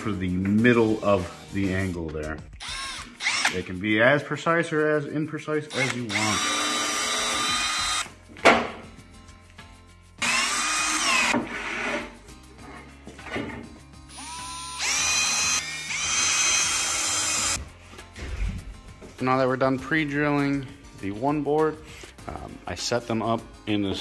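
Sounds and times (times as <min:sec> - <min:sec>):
cordless drill motor whine: 0:02.6 - 0:03.6, 0:05.7 - 0:08.1, 0:10.2 - 0:11.4, 0:14.1 - 0:17.6.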